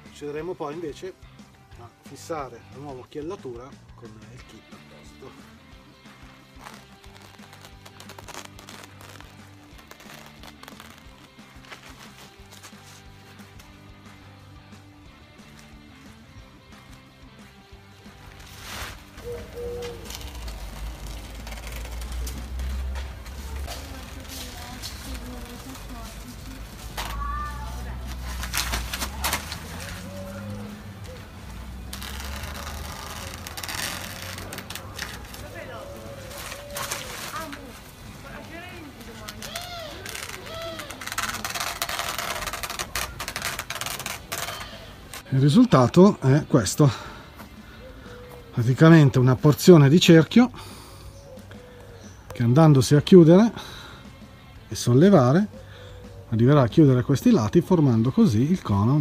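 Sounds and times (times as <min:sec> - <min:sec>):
soft background music: 0:00.0 - 0:59.0
plastic tarp crackling: 0:05.2 - 0:13.8, 0:18.0 - 0:46.0.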